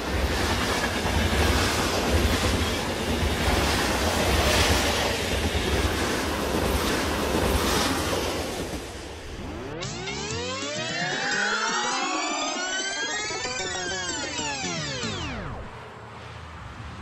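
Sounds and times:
train passing rumbling: 0:00.0 - 0:09.7.

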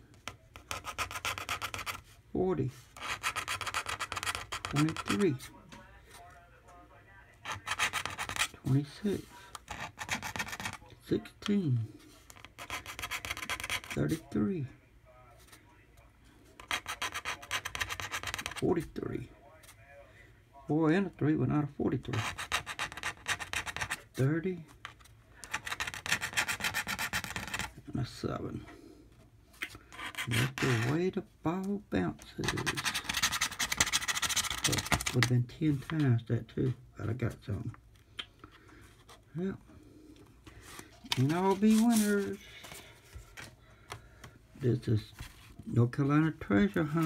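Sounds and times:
coin scratching lottery ticket: 0:00.6 - 0:02.0, 0:02.9 - 0:05.4, 0:07.4 - 0:09.0, 0:09.6 - 0:10.8, 0:12.3 - 0:14.2, 0:16.6 - 0:18.7, 0:22.1 - 0:24.1, 0:25.4 - 0:27.7, 0:29.9 - 0:31.0, 0:32.4 - 0:35.2.

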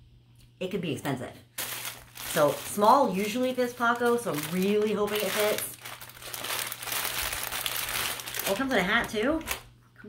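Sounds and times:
plastic bag crinkling: 0:01.5 - 0:09.7.

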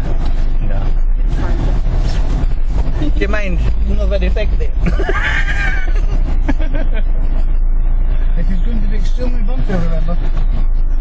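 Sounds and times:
engine droning inside vehicle cab: 0:00.0 - 0:11.0.

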